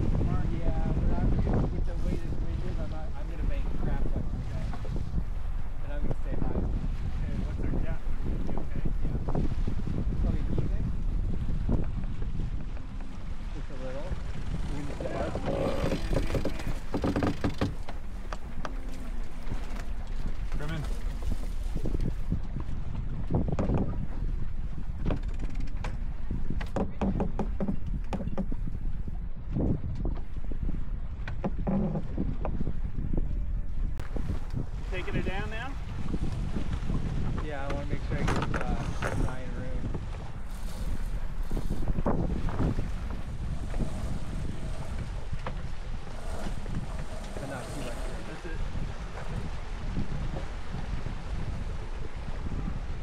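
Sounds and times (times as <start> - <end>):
water rushing past hulls: 0.0 - 53.0
wind buffeting microphone: 0.0 - 53.0
indistinct crew voices: 14.6 - 16.8, 43.5 - 48.6.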